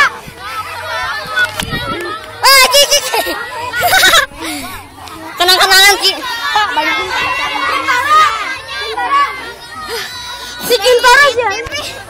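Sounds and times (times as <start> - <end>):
children shouting while playing: 0.0 - 12.0.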